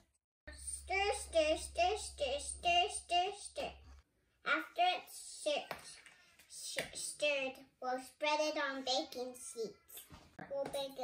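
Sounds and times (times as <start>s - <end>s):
child saying words: 0.6s - 3.8s, 4.4s - 11.0s.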